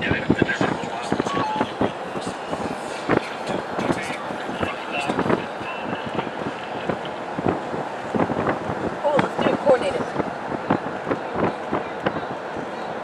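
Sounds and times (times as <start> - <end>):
indistinct voices: 0.0 - 13.0
road and wind noise: 0.0 - 13.0.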